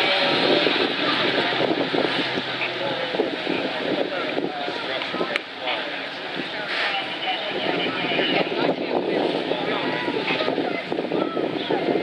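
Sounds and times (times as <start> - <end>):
fire truck engine running: 0.0 - 6.9
people talking: 0.0 - 12.0.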